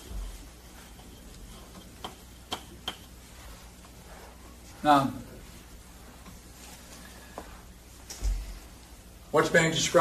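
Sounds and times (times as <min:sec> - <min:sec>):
chalk tapping on blackboard: 0:00.0 - 0:04.0.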